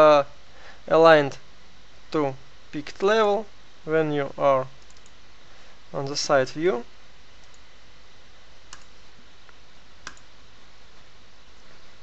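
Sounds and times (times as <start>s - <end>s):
steady low hiss: 0.0s - 12.0s
computer mouse clicks: 4.8s - 5.2s, 7.4s - 7.6s, 8.7s - 9.0s, 10.0s - 10.3s.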